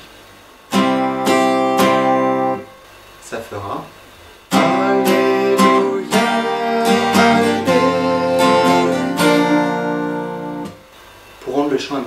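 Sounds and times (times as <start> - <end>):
acoustic guitar strummed: 0.7 - 3.0, 4.5 - 11.0.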